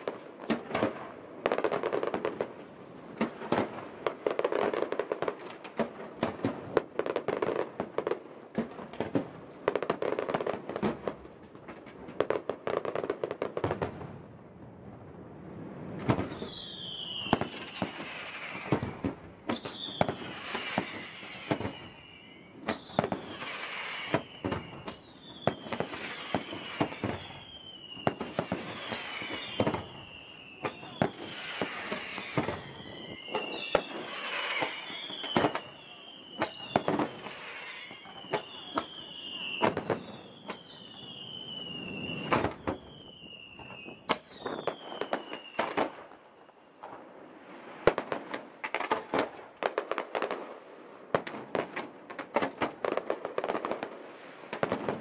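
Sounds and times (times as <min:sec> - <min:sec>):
falling whistle of fireworks: 0:00.0 - 0:11.2, 0:15.5 - 0:50.5, 0:51.1 - 0:55.0
fireworks bangs: 0:00.0 - 0:55.0.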